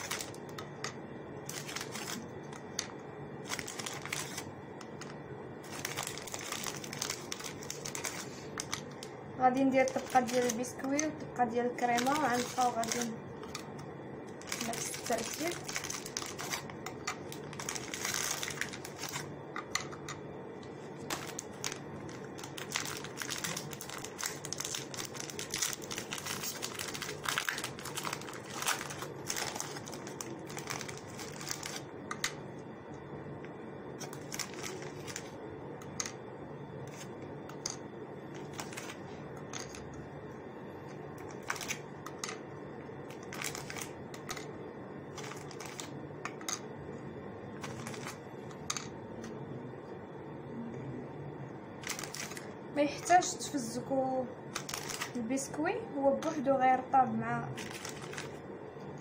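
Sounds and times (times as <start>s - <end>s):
low hum: 0.0s - 59.0s.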